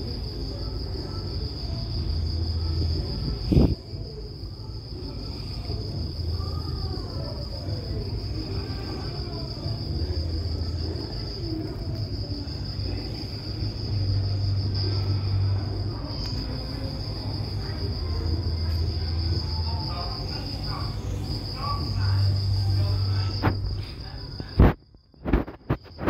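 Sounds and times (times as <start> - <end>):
high-pitched insect trill: 0.0 - 26.0.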